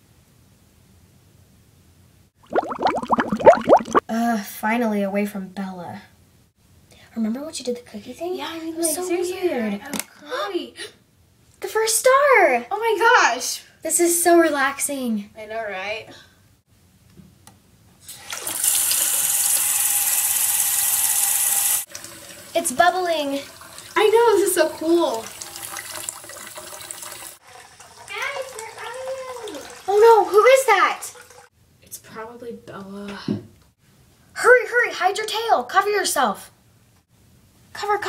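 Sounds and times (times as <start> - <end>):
water gurgling and bubbling: 2.4 - 4.0
water gushing into bathtub: 2.4 - 4.0, 18.1 - 20.1, 21.4 - 31.5.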